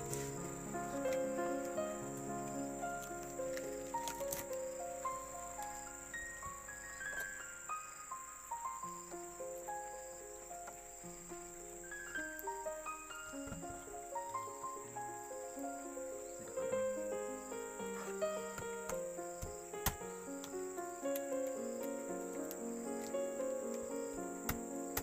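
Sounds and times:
high insect drone: 0.0 - 25.0
slow background melody: 0.0 - 25.0.

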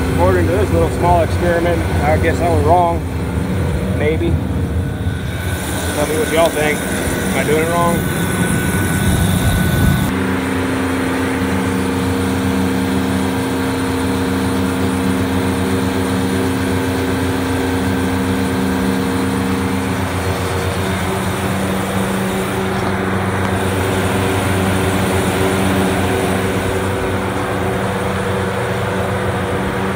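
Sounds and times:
condenser fan motors humming: 0.0 - 29.9.

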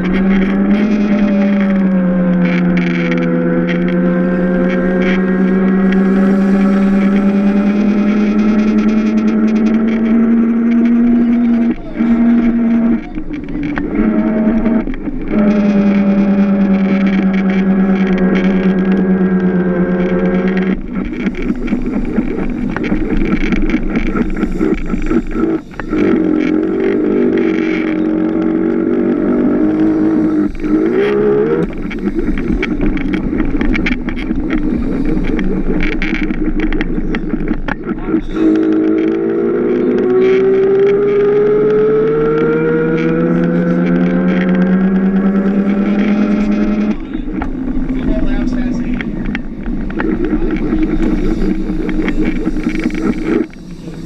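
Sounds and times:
chassis rattles and road noise: 0.0 - 54.0
electric motor whining: 0.0 - 54.0.

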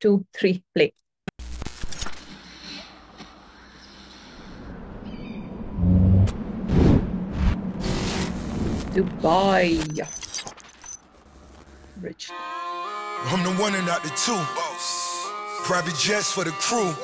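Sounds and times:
deep low drone: 4.1 - 9.2.

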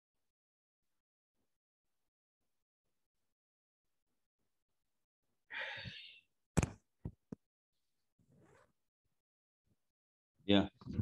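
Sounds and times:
man sighing: 5.5 - 6.2.

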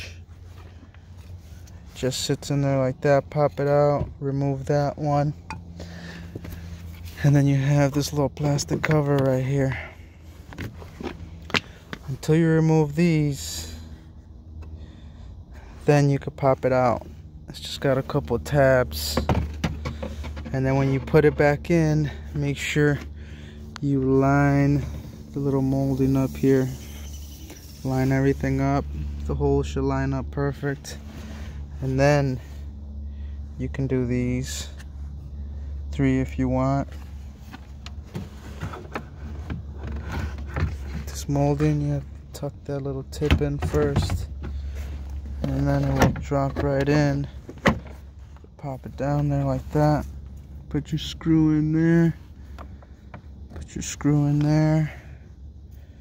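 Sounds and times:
low steady rumble: 0.0 - 56.0.

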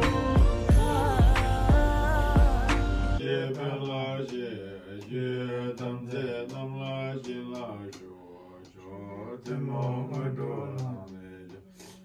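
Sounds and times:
background music with a beat: 0.0 - 4.4
voices chanting on a low pitch: 0.0 - 12.0.

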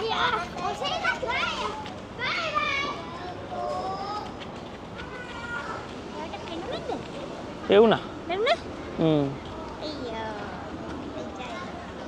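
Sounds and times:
children calling out: 0.0 - 4.4, 5.0 - 5.9.

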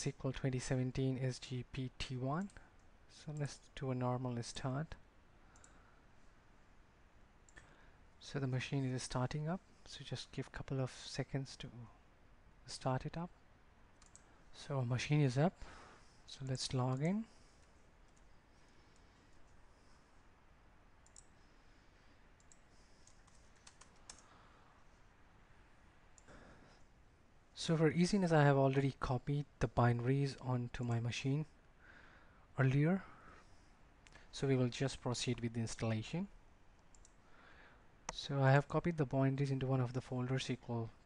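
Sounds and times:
faint mouse click: 5.5 - 5.8, 14.0 - 14.3, 21.0 - 21.4, 22.4 - 24.3, 36.8 - 37.2.

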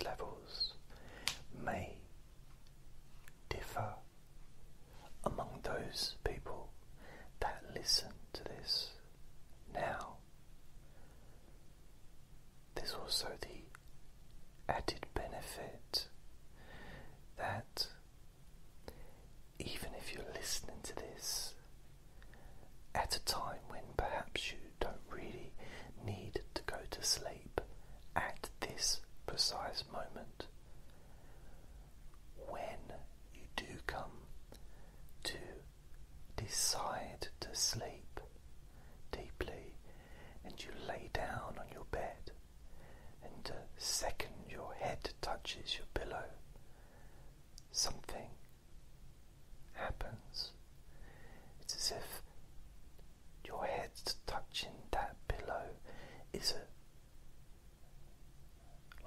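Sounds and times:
person whispering: 0.0 - 2.1, 3.2 - 4.1, 5.0 - 10.2, 12.7 - 13.8, 14.6 - 16.1, 17.4 - 18.0, 19.6 - 21.7, 22.9 - 30.6, 32.4 - 34.3, 35.2 - 35.7, 36.4 - 38.3, 39.1 - 39.8, 40.4 - 42.4, 43.2 - 46.4, 47.6 - 48.5, 49.7 - 50.6, 51.6 - 52.3, 53.4 - 56.8.

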